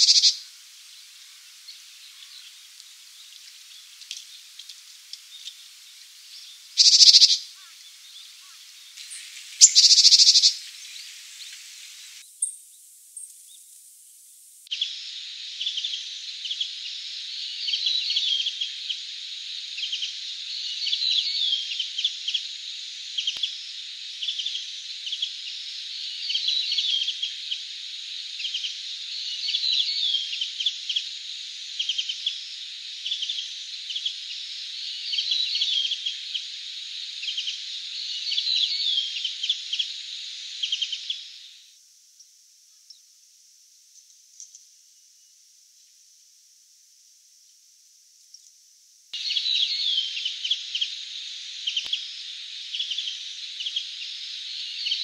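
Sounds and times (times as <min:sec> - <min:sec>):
bird giving high calls: 0:00.0 - 0:00.4, 0:06.8 - 0:07.8, 0:08.4 - 0:10.7
birds chirping and twittering: 0:00.0 - 0:13.8, 0:14.7 - 0:41.6, 0:49.2 - 0:55.0
steady hiss: 0:00.0 - 0:17.7, 0:39.2 - 0:55.0.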